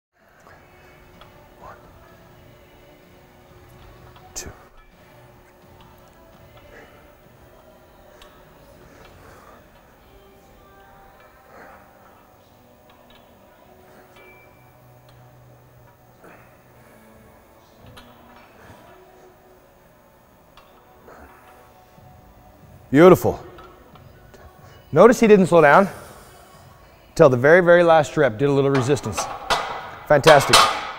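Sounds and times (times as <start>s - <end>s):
faint background music: 0.2s - 30.9s.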